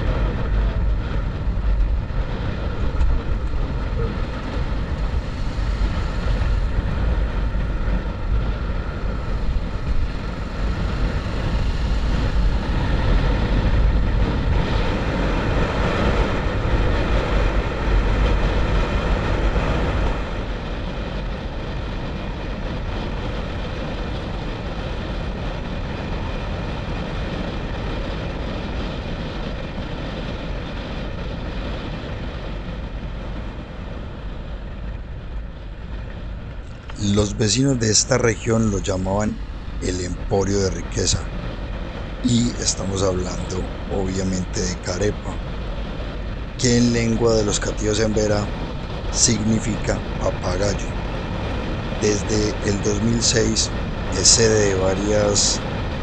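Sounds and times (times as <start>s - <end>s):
motorcycle engine drone: 0.0s - 56.0s
wind rush on microphone: 0.0s - 56.0s.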